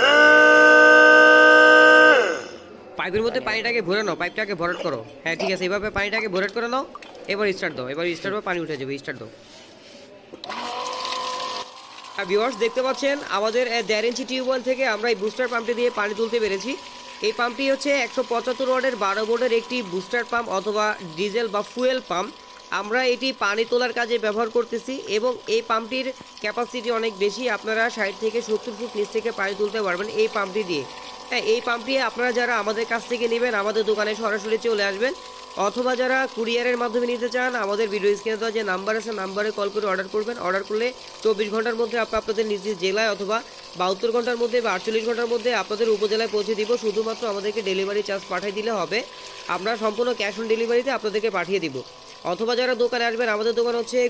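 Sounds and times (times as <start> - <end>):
electric pump whining: 0.0 - 2.8, 10.4 - 54.0.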